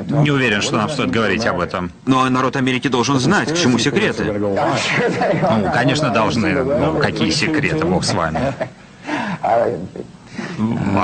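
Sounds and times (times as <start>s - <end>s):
man laughing: 3.5s - 8.8s.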